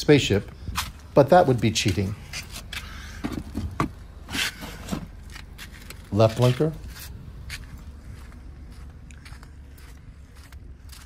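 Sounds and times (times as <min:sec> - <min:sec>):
low steady hum: 0:00.0 - 0:11.0
faint footsteps: 0:00.4 - 0:11.0.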